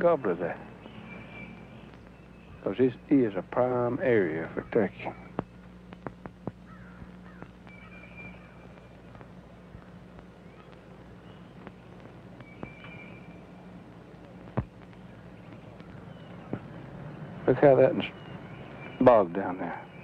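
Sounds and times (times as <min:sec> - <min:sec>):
bird calling: 0:00.0 - 0:13.8, 0:14.9 - 0:20.0
steady low hum: 0:00.0 - 0:20.0.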